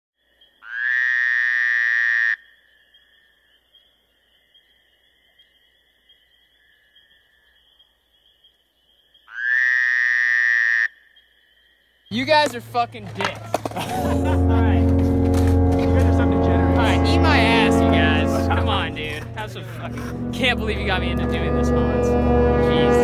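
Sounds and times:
long buzzing tone: 0:13.9 - 0:23.0.

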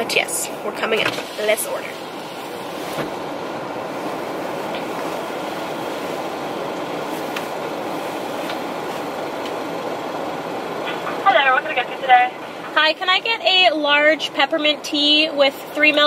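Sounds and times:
car cabin noise: 0:00.0 - 0:16.0.

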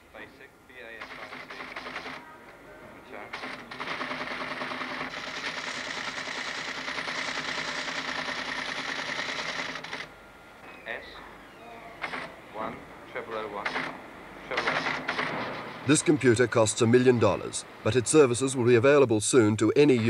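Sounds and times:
teleprinter clattering: 0:01.0 - 0:02.2, 0:03.3 - 0:10.1, 0:12.0 - 0:12.3, 0:13.4 - 0:15.6.

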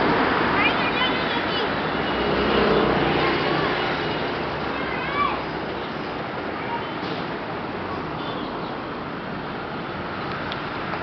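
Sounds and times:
city road traffic hum: 0:00.0 - 0:11.0.

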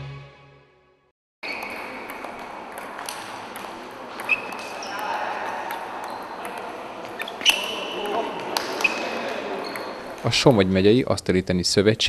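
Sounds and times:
table tennis balls clicking: 0:01.6 - 0:07.6.

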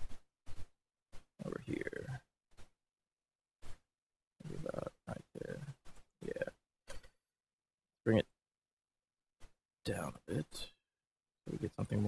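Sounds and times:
man making wordless vocal sounds: 0:04.4 - 0:06.6.

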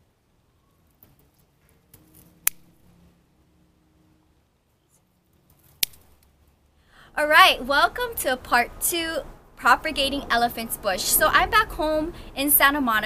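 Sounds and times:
scissors snipping stems: 0:02.0 - 0:02.7, 0:05.6 - 0:06.3.

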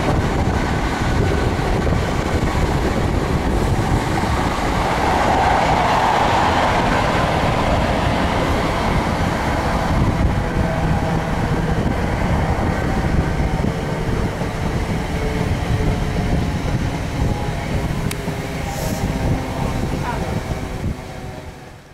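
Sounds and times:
rush of air: 0:00.0 - 0:21.3
train wheels rumbling on rail: 0:00.0 - 0:21.9.

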